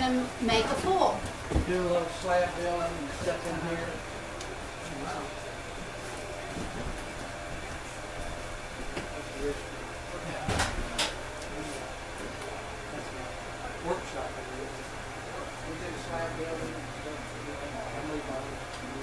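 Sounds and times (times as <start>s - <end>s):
potter's wheel humming: 0.0s - 19.0s.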